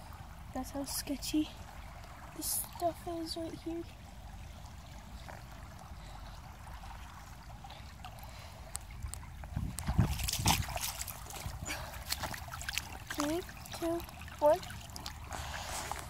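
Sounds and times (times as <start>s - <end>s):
creek water trickling: 0.0s - 16.0s
splashing in water: 1.8s - 16.0s.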